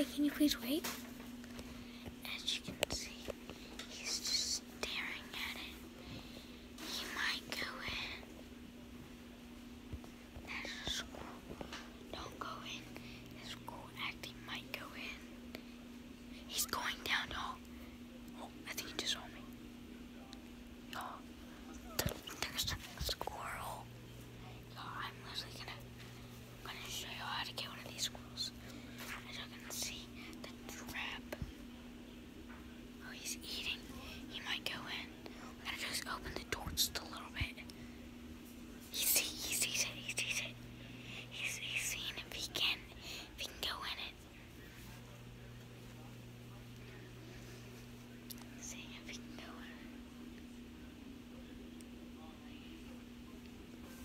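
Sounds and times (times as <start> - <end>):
boy whispering: 0.0 - 1.0, 2.0 - 8.4, 10.3 - 11.4, 12.1 - 19.6, 20.9 - 31.5, 33.0 - 37.8, 38.8 - 44.3, 48.3 - 50.0
steady low hum: 0.0 - 54.0.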